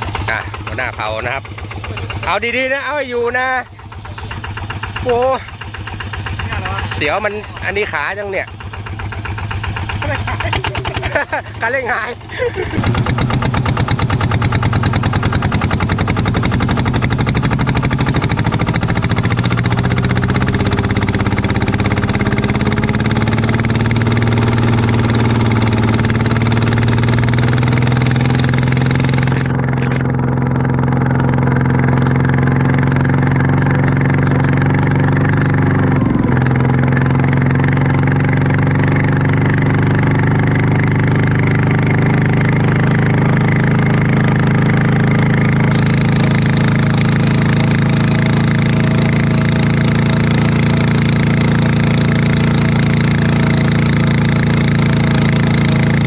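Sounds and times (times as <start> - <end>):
tractor diesel engine under load: 0.0 - 56.0
wheels churning through mud: 0.0 - 56.0.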